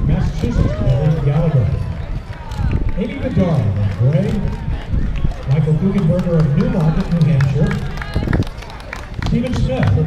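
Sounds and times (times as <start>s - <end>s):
man speaking over public address: 0.0s - 2.0s, 2.9s - 7.9s, 9.2s - 10.0s.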